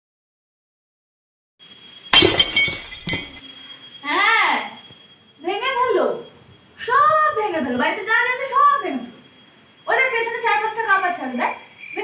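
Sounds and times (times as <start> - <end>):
glass breaking crash: 2.1 - 3.4.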